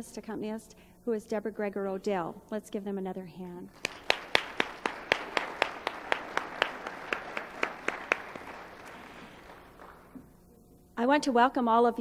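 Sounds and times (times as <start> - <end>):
loud even hand clapping: 3.7 - 10.3
audience applause: 3.8 - 10.2.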